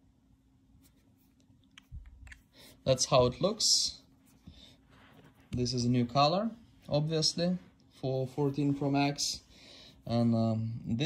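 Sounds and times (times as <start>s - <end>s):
man speaking: 2.8s - 4.1s, 5.5s - 9.5s, 10.1s - 11.0s.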